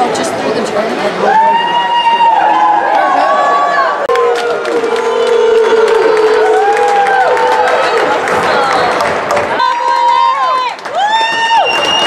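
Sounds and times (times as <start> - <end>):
crowd cheering: 1.2 - 12.0
sharp claps: 4.1 - 12.0.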